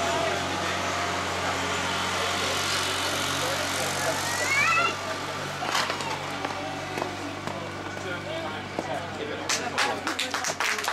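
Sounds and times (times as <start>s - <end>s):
distant voices: 0.0s - 10.9s
outdoor background noise: 0.0s - 10.9s.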